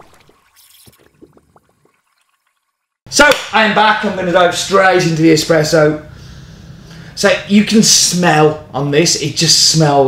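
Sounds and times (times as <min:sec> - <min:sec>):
liquid splash: 0:00.0 - 0:03.0.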